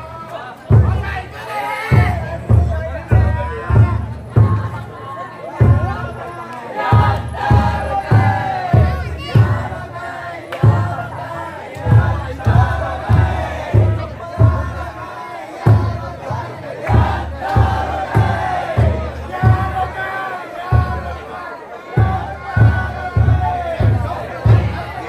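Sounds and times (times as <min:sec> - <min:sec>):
crowd chanting and shouting: 0:00.0 - 0:25.0
big drum beating: 0:00.7 - 0:04.9, 0:05.5 - 0:25.0.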